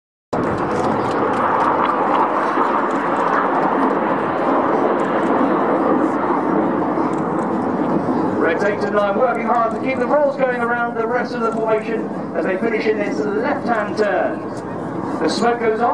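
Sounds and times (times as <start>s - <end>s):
jet engines rushing: 0.4s - 15.9s.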